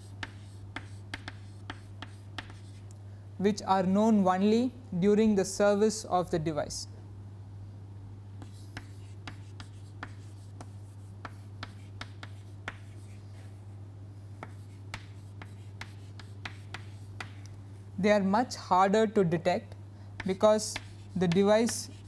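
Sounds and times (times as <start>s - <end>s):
chalk tapping and scratching: 0.0s - 2.9s, 8.4s - 13.6s, 14.4s - 17.5s, 20.2s - 22.0s
steady low hum: 0.0s - 22.0s.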